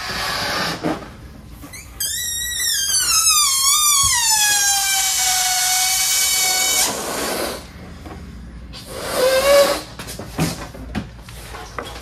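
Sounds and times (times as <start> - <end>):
air squealing out of balloon neck: 1.7 - 7.8, 8.7 - 10.1.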